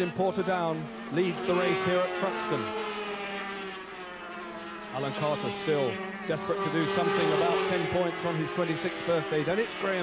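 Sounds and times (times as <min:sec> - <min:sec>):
racing motorcycle engines droning: 0:00.0 - 0:10.0.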